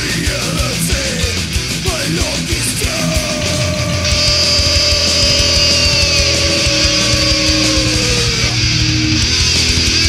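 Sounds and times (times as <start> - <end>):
distorted metal guitars: 0.0 - 10.0
fast kick drum: 4.1 - 8.3.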